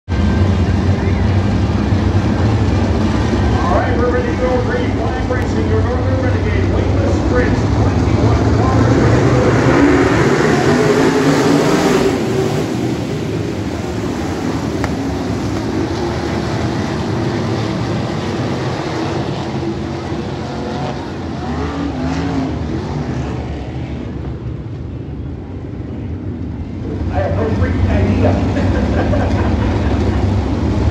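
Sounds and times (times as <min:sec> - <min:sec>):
race car engines roaring: 0:00.1 - 0:30.9.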